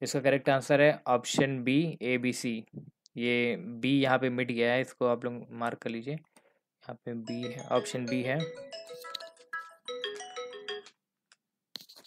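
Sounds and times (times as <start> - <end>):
electronic chime melody: 7.2 - 10.9.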